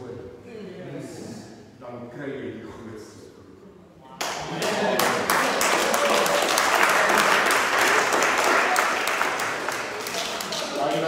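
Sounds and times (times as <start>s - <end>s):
audience applauding: 4.2s - 11.0s.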